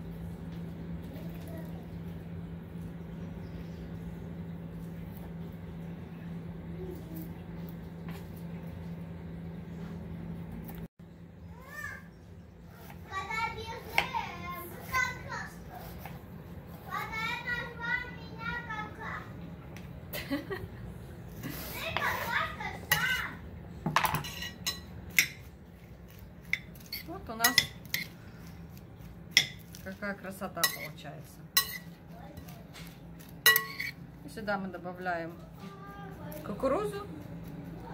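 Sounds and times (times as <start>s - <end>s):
steady low hum: 0.0s - 37.9s
utensil tossing salad in bowl: 24.1s - 34.0s
utensil clinking against bowl: 33.4s - 34.0s.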